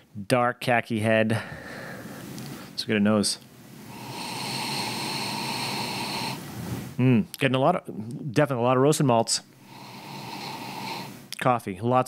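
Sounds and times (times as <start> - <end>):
person sniffing through nose: 3.9 - 7.0, 9.6 - 11.2.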